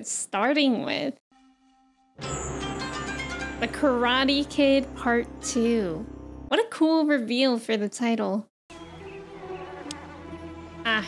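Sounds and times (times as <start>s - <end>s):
quiet music: 1.3s - 6.5s, 8.7s - 11.0s.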